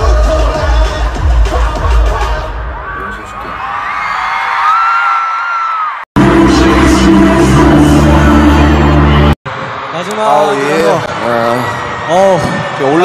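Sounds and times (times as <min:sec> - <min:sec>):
song with steady bass line: 0:00.0 - 0:02.7, 0:06.2 - 0:09.4
live pop concert music: 0:00.0 - 0:03.6, 0:06.2 - 0:09.4
crowd screaming: 0:02.7 - 0:06.1, 0:08.0 - 0:13.0.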